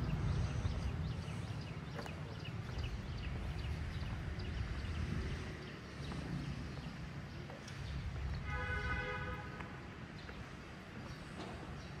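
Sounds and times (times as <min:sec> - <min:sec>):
steady low rumble: 0:00.0 - 0:08.4
footsteps on pavement: 0:00.0 - 0:12.0.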